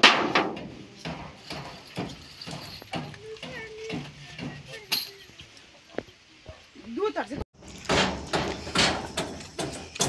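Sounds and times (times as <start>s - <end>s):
knocks from construction work: 0.0s - 4.7s, 7.6s - 10.0s.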